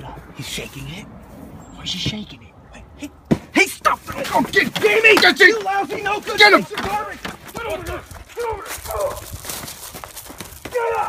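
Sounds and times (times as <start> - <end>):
running footsteps on gravel: 3.8 - 11.0
person shouting: 4.8 - 9.3, 10.6 - 11.0.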